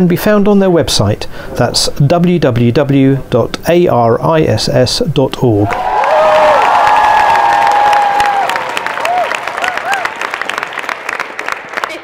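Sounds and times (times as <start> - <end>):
crowd cheering: 5.6 - 12.0
crowd clapping: 5.6 - 12.0
short whoops: 5.7 - 10.1.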